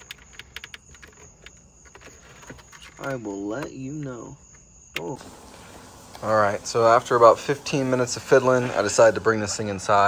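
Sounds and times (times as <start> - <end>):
handling noise: 0.0 - 6.2.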